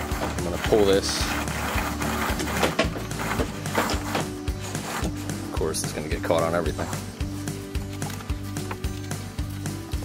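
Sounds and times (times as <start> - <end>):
rope scraping through pulley: 0.0 - 5.6
background music: 0.0 - 10.0.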